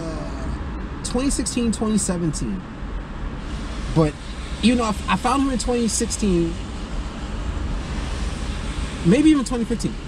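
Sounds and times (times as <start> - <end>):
low hum inside car: 0.0 - 10.0
steady rushing noise: 2.8 - 10.0.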